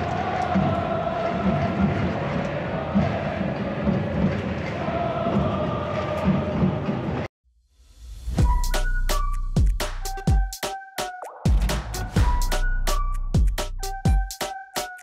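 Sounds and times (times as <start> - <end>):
crowd chanting in unison: 0.0 - 7.3
low drum beat: 11.5 - 12.6.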